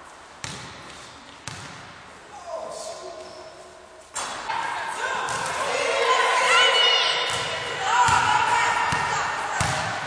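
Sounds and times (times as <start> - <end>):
basketballs bouncing on wooden floor: 1.4 - 1.8, 7.2 - 10.0
children shouting and chattering: 4.8 - 9.6.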